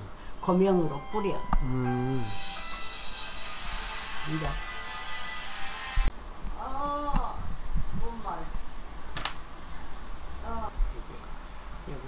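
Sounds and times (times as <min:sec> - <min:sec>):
person humming: 0:01.6 - 0:02.4.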